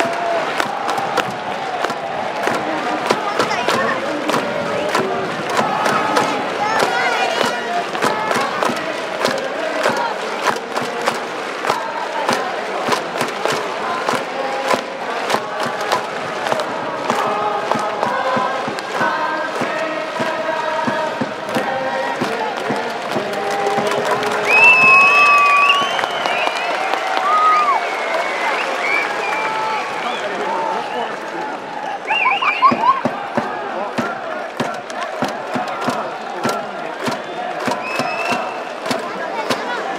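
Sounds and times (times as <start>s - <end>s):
crowd clapping: 0.0s - 39.9s
stadium crowd cheering and chanting: 0.0s - 39.9s.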